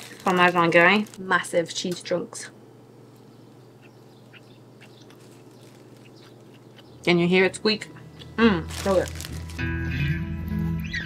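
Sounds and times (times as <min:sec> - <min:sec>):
cheese curds squeaking when chewed: 0:03.8 - 0:07.1.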